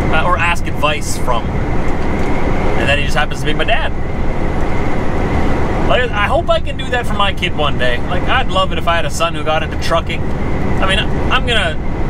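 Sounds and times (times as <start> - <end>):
road noise: 0.0 - 12.0
truck engine drone: 0.0 - 12.0.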